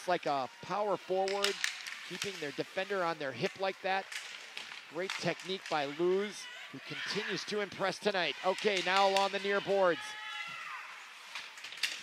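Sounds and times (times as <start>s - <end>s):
skating rink noise: 0.0s - 12.0s
hockey stick or puck click: 1.2s - 2.4s, 8.6s - 9.5s.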